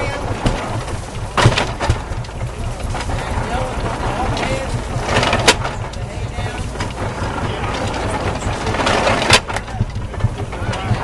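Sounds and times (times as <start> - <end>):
hay baler clatter: 0.0 - 11.0
low engine pulse: 0.0 - 11.0
sharp knocks: 0.0 - 11.0.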